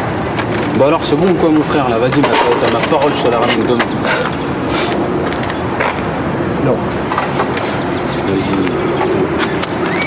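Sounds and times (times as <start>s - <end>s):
workshop background noise: 0.0s - 10.0s.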